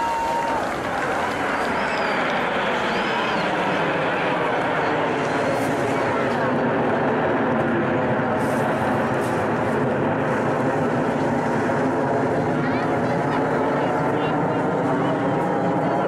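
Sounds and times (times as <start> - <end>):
jet engines overhead: 0.0 - 16.0
voices: 11.1 - 16.0.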